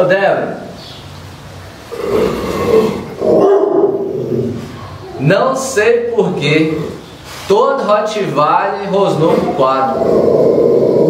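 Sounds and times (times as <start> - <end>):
dog growling low: 1.9 - 5.2, 9.2 - 11.0.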